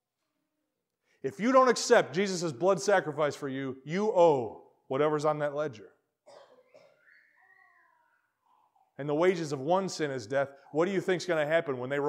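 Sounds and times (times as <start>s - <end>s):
faint high wavering cry: 6.7s - 9.0s.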